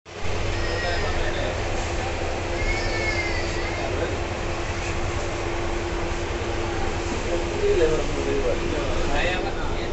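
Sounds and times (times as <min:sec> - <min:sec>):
train rumble and hum: 0:00.1 - 0:09.9.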